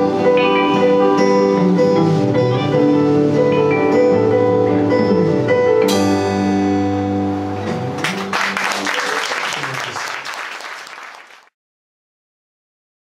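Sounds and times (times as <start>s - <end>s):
audience applause: 8.0s - 11.6s.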